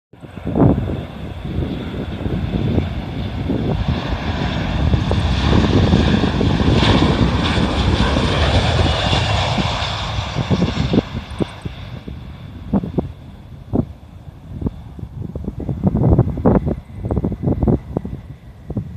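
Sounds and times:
jet plane flying low: 0.2 - 18.9.

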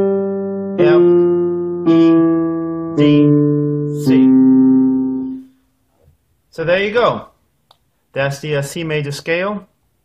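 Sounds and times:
digital piano low note: 0.0 - 5.5
person speaking a letter: 0.8 - 1.3, 3.0 - 4.5, 6.5 - 7.4, 8.1 - 9.7.

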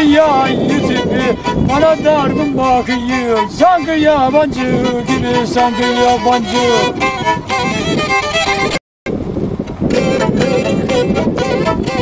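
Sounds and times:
bowed fiddle notes: 0.0 - 8.8, 9.7 - 12.0.

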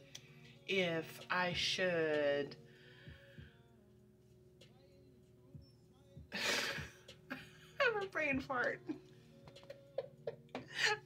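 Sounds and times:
woman laughing softly: 9.8 - 11.0.

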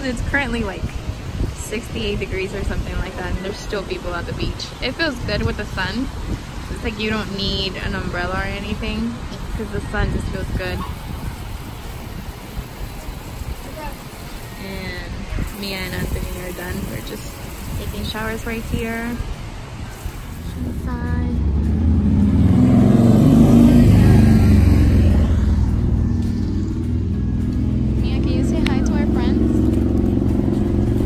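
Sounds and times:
motor vehicle passing: 0.0 - 31.0
wind rumbling on microphone: 0.0 - 31.0.

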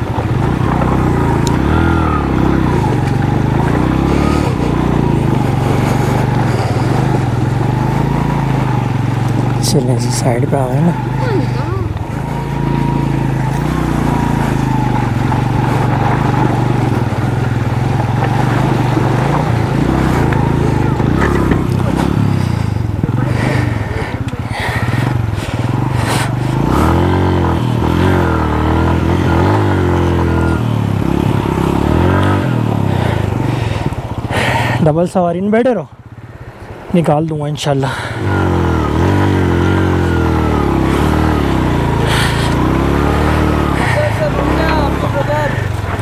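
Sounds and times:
motorcycle engine revving: 0.0 - 46.0.

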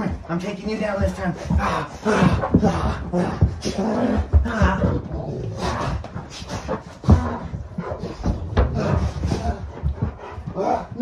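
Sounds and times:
dogs scuffling on carpet: 0.0 - 11.0
thumps on floor: 1.0 - 10.6
man grunting: 1.5 - 6.1, 10.5 - 11.0.

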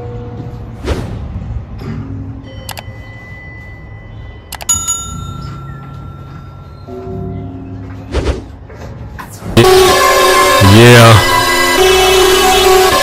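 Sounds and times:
bell ding: 2.4 - 7.4
click with short ring: 2.6 - 2.9, 4.5 - 6.0.

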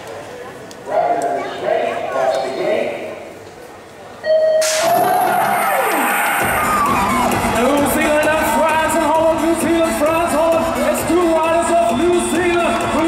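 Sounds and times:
crowd cheering: 5.0 - 13.0.

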